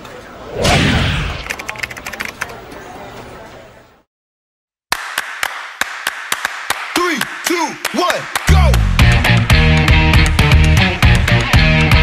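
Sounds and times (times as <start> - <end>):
hand claps: 4.9 - 11.5.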